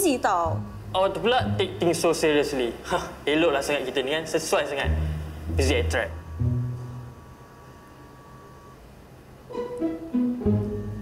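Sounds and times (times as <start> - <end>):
faint room hum: 0.0 - 11.0
faint steady high tone: 4.8 - 11.0.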